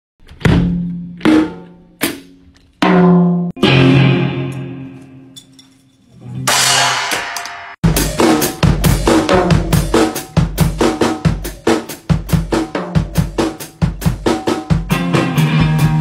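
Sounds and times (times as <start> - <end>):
electric guitar chords: 3.6 - 5.2, 14.8 - 16.0
drum kit fast beats: 6.5 - 16.0.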